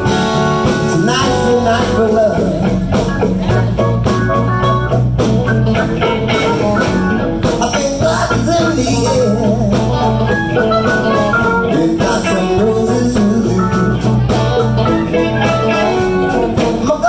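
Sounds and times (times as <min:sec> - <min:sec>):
blues harmonica: 0:00.0 - 0:17.0
electric blues band playing: 0:00.0 - 0:17.0.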